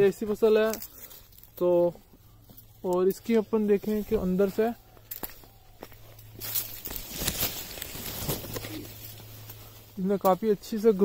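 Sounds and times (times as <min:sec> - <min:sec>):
steady low hum: 0:00.0 - 0:11.0
vines rustling: 0:00.0 - 0:11.0.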